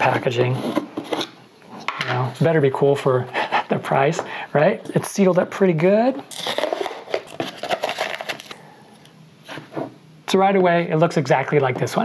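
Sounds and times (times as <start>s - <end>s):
plastic seal crinkling: 6.3s - 8.6s.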